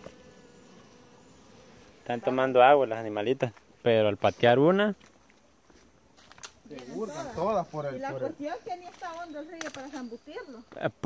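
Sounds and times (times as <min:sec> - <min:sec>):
honeybees buzzing: 0:00.0 - 0:04.7, 0:05.5 - 0:11.0.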